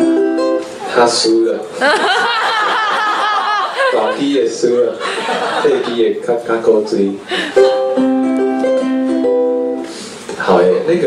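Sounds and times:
ukulele playing: 0:00.0 - 0:01.8, 0:07.3 - 0:10.0.

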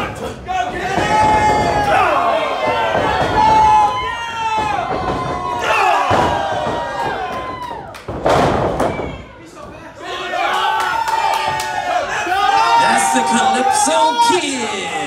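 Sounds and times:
crowd shouting and yelling: 0:00.0 - 0:07.9, 0:08.8 - 0:15.0.

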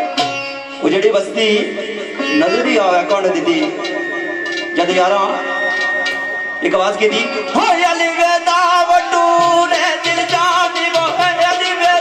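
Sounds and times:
amplified sitar: 0:00.0 - 0:12.0
man singing into a microphone: 0:07.0 - 0:12.0.

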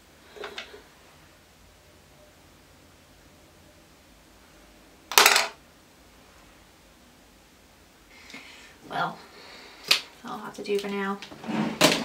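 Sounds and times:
small object clattering: 0:05.1 - 0:05.6.

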